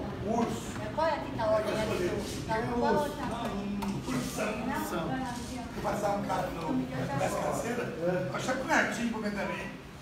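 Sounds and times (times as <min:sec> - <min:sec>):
people talking: 0:00.0 - 0:09.8.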